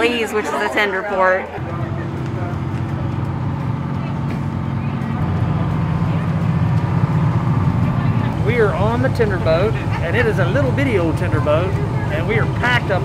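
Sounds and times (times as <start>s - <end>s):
boat engine idling: 1.5s - 13.0s.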